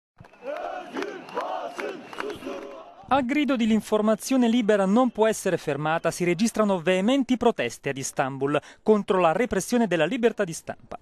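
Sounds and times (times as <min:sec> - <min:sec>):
crowd chanting in unison: 0:00.2 - 0:03.1.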